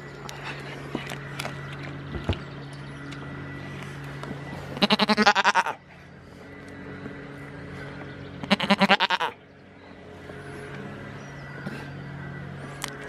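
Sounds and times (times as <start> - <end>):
goat bleating: 4.8 - 5.8, 8.4 - 9.4.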